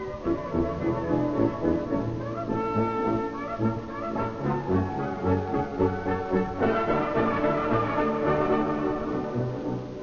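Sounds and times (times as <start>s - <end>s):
brass instruments: 0.0s - 10.0s
wind band playing: 0.0s - 10.0s.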